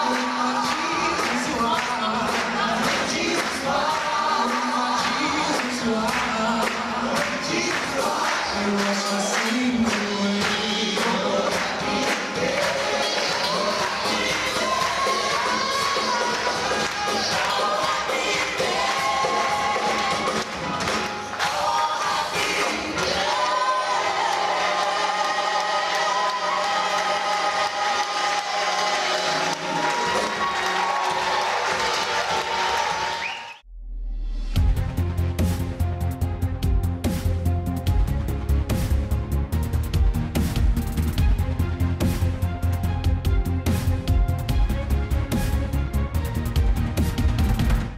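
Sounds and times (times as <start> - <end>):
gospel choir singing: 0.0 - 33.4.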